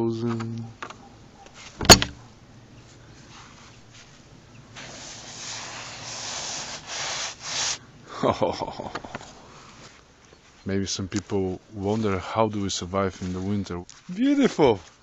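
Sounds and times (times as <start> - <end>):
rough rustling and scraping: 0.2 - 7.8, 8.8 - 15.0
sharp loud knock: 1.8 - 2.2.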